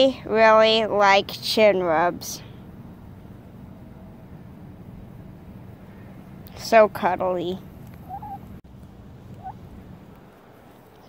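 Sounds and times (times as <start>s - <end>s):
hen calling softly: 8.0s - 8.5s, 9.3s - 9.6s.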